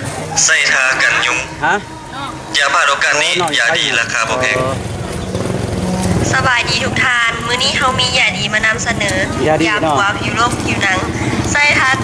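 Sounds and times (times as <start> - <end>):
small engine running: 0.0 - 12.0
sales pitch over loudspeaker: 0.3 - 4.8.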